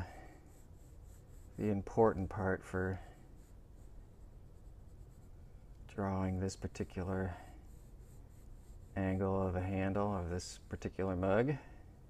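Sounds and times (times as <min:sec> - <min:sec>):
pencil scratching on paper: 0:00.0 - 0:11.4.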